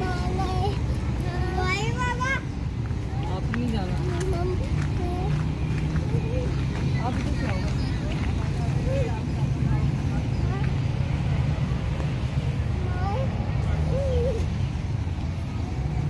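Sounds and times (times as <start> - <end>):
faint distant voices: 0.0 - 16.0.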